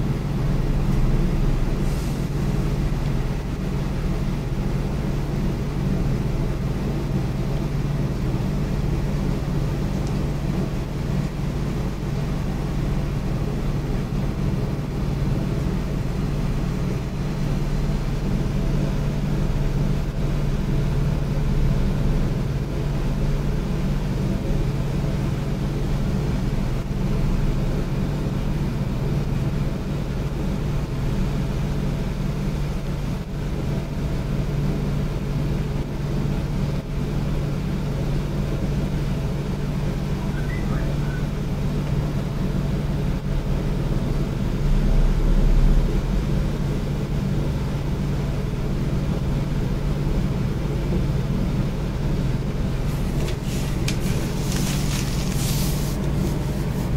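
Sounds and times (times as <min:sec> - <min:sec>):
steady low hum: 0:00.0 - 0:56.9.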